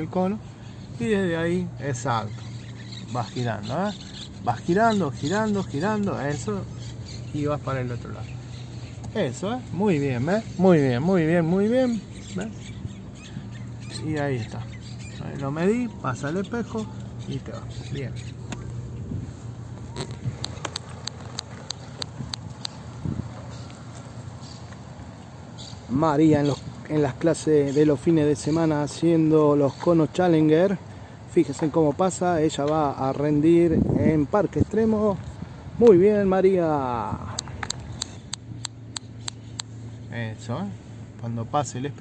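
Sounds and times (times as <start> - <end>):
car engine humming: 0.0 - 42.0
sharp evenly spaced ticks: 0.4 - 19.0, 19.6 - 25.9, 37.3 - 40.1.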